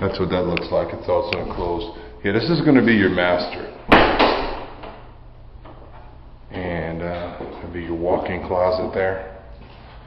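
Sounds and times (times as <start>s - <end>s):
sharp knock: 3.9s - 4.9s.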